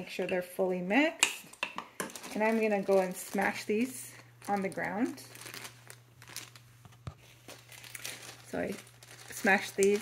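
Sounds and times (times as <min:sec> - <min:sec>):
plastic bag crinkling: 0:02.0 - 0:10.0.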